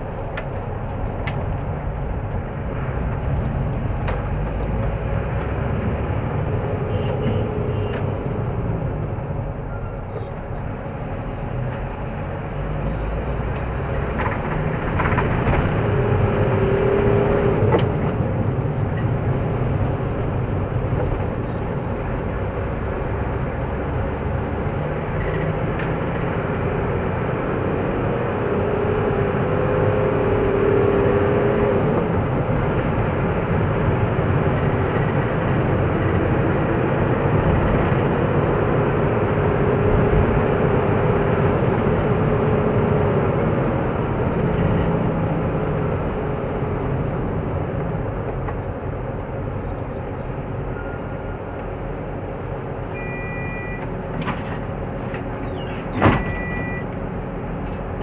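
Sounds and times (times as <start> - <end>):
car engine and tyre noise: 0.0 - 58.0.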